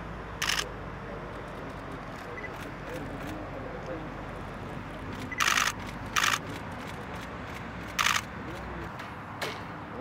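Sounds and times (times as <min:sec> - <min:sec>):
camera shutters firing: 0:00.4 - 0:00.7, 0:05.2 - 0:08.3.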